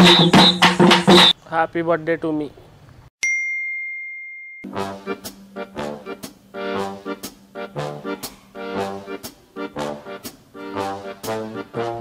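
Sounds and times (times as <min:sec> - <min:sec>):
music: 0:00.0 - 0:01.3, 0:04.6 - 0:12.0
bell-like ding: 0:03.2 - 0:04.8.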